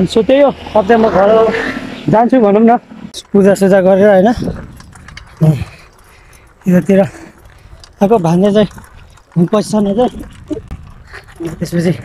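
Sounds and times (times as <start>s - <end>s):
faint clicking and rattling: 3.2s - 12.0s.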